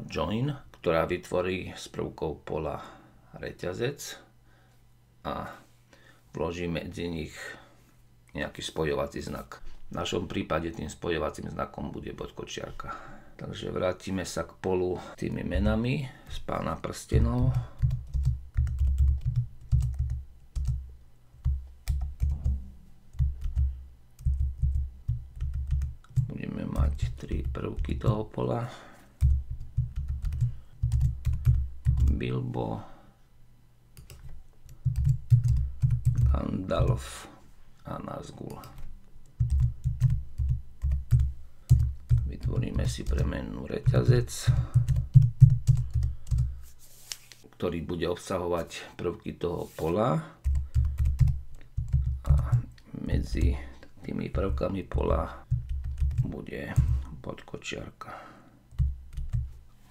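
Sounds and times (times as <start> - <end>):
computer keyboard typing: 17.4 - 20.8, 21.4 - 22.5, 23.1 - 28.2, 29.2 - 32.2, 34.0 - 37.0, 38.5 - 46.5, 50.4 - 53.6, 54.3 - 57.1, 58.7 - 59.5.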